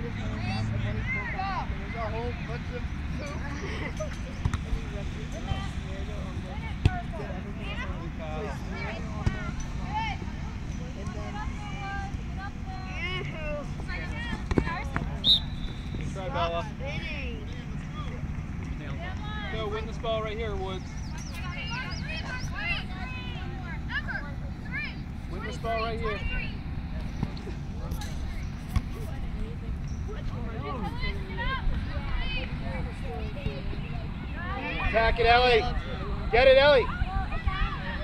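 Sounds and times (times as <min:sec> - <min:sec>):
voices shouting and calling: 0:00.0 - 0:38.0.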